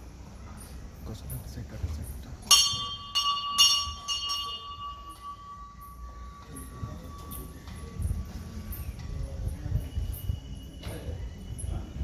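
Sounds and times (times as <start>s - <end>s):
metal bell ringing: 2.5s - 9.0s.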